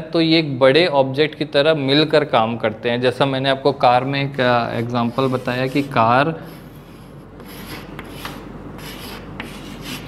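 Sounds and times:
chalk rubbing on blackboard: 0:04.8 - 0:10.0.

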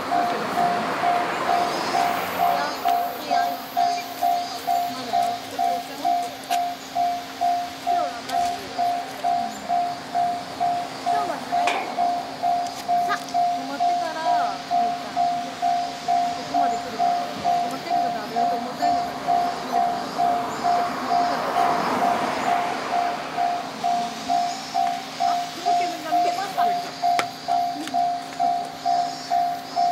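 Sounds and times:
level crossing bell ringing: 0:00.0 - 0:29.9.

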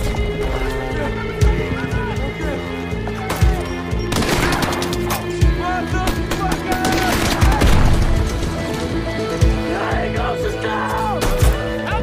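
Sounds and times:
gunfire: 0:04.1 - 0:05.0.

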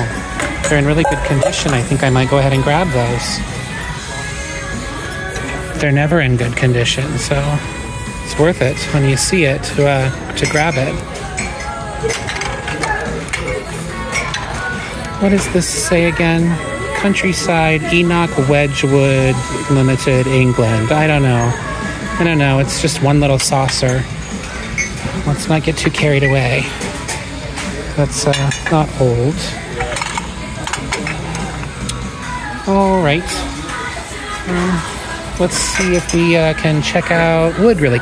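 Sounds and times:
ceramic saucers clinking: 0:00.0 - 0:03.2, 0:08.4 - 0:21.6, 0:23.0 - 0:32.0, 0:34.9 - 0:37.1
background music: 0:00.0 - 0:38.0
faint voices: 0:00.0 - 0:38.0.

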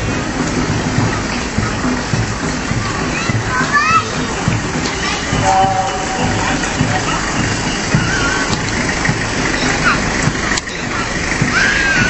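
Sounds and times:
truck engine rumbling: 0:00.0 - 0:12.0
voices: 0:00.1 - 0:12.0.

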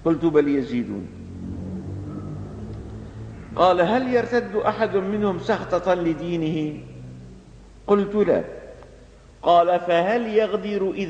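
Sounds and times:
low background hum and rumble: 0:00.0 - 0:11.0.

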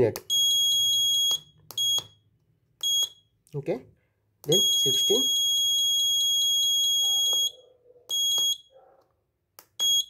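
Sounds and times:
short beeps: 0:04.5 - 0:08.7, 0:09.8 - 0:10.0
high-pitched buzzer beep: 0:09.8 - 0:10.0.

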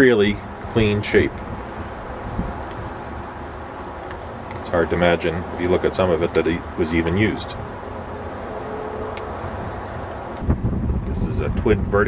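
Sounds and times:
wind on microphone: 0:00.4 - 0:03.3, 0:08.4 - 0:12.0.

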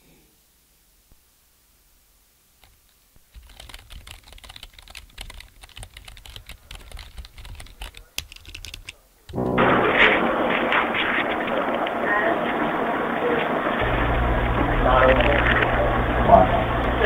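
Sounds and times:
rapid irregular clicking and tapping: 0:02.6 - 0:11.9
loud muffled sound: 0:08.9 - 0:17.0.

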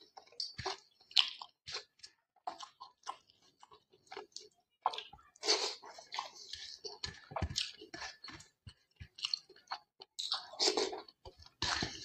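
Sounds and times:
chewing and mouth sounds: 0:00.0 - 0:12.0.

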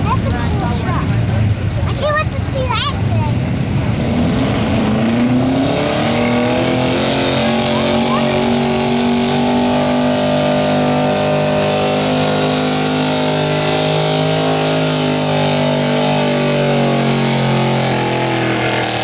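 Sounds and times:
pickup engine at full throttle: 0:00.0 - 0:19.0.

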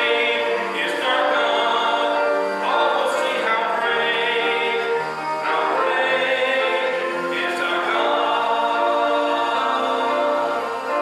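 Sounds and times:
slow church singing: 0:00.0 - 0:11.0.

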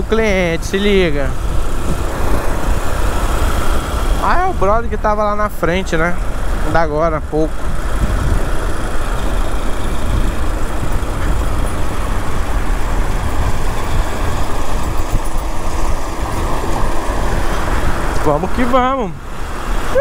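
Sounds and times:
motorcycle engine running: 0:00.0 - 0:20.0
wind and road noise: 0:00.0 - 0:20.0.

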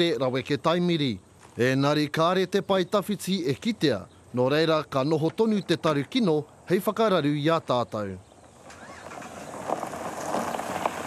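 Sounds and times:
car tyres crunching over gravel: 0:08.4 - 0:11.0.

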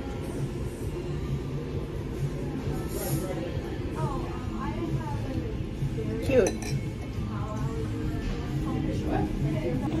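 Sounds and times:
background music: 0:00.0 - 0:10.0
restaurant chatter: 0:00.0 - 0:10.0
tableware clinking: 0:06.2 - 0:07.2.

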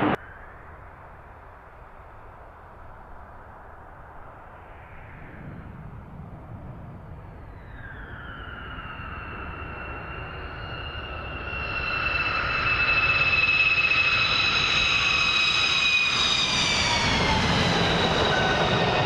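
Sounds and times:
jet engines taking off: 0:00.0 - 0:00.5, 0:04.7 - 0:19.0.

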